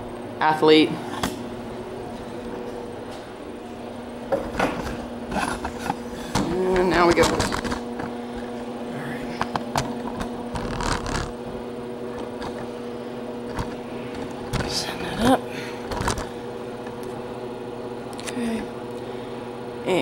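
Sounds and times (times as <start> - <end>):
low machine hum: 0.0 - 20.0.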